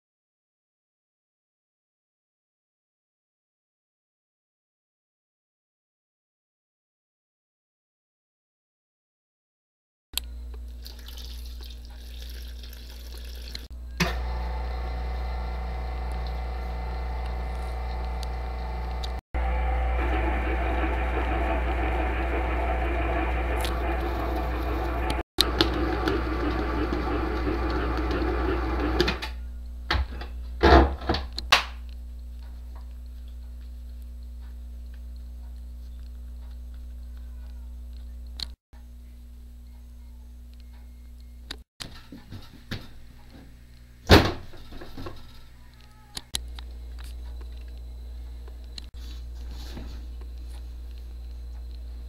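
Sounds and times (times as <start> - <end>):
stand mixer kneading dough: 14.0 - 29.2.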